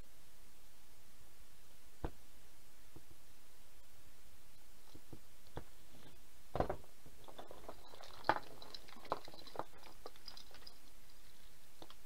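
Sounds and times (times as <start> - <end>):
wires rustling: 4.4 - 12.0.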